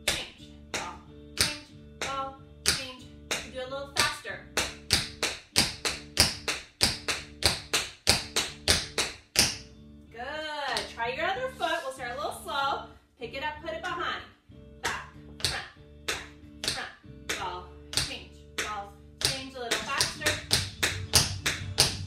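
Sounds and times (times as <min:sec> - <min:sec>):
background music: 0:00.0 - 0:22.0
tap shoes clicking on hard floor: 0:01.4 - 0:09.6, 0:18.0 - 0:22.0.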